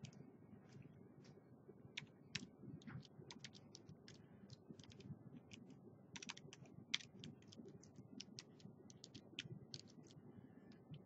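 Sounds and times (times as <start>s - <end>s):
typing on computer keyboard: 2.0s - 11.0s.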